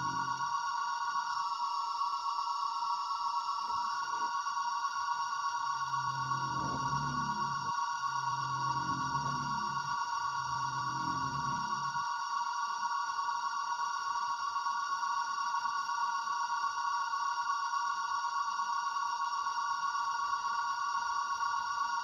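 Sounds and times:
electronic drone of high tones: 0.0 - 12.3
deep low note: 5.9 - 11.9.

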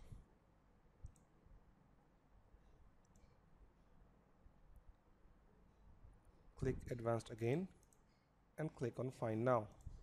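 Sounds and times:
faint computer mouse clicks: 1.0 - 1.3, 3.0 - 3.3, 7.8 - 8.1.

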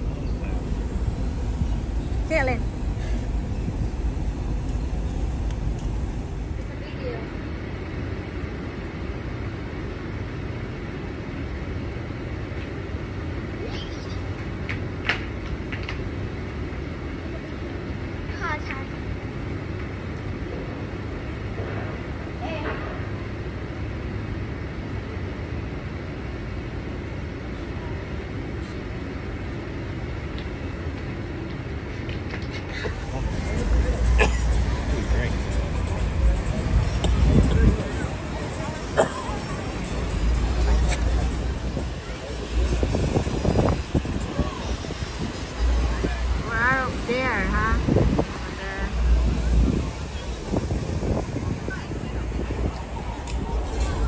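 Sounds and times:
faint voices: 0.0 - 8.9, 13.4 - 14.5, 26.6 - 54.0
low rumble and hiss: 0.0 - 54.0.

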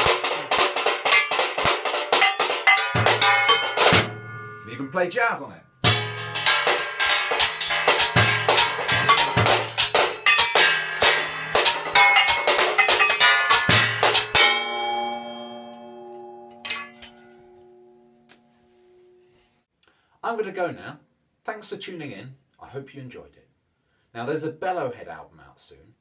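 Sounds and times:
tin can drum kit groove: 0.0 - 5.0, 5.8 - 16.0, 16.6 - 17.2
struck metal ringing: 0.0 - 18.3.

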